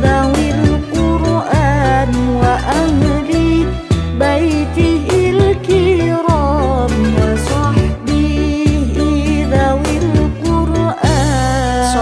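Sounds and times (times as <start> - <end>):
instrumental backing: 0.0 - 12.0
person singing ornamented melody: 0.0 - 12.0.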